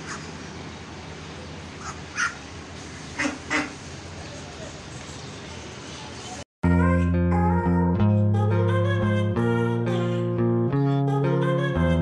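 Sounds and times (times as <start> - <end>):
duck quacking: 1.8 - 2.4, 3.2 - 3.8.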